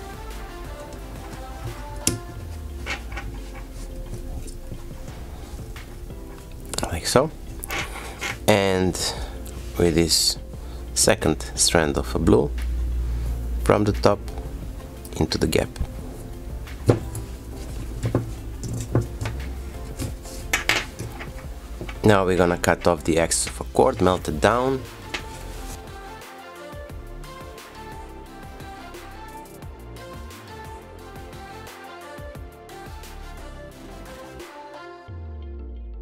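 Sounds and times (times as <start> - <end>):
faint background music: 0.0 - 36.0.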